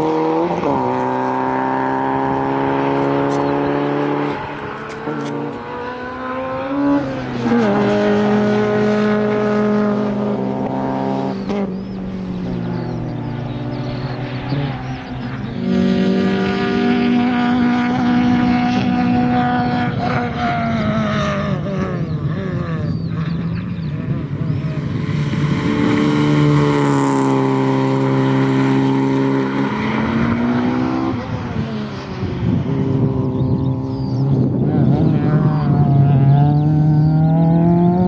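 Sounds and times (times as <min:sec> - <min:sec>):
car engine revving: 0:00.0 - 0:38.0.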